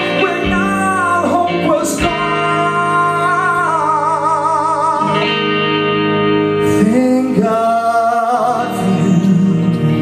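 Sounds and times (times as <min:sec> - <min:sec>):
electric guitar held notes: 0:00.0 - 0:10.0.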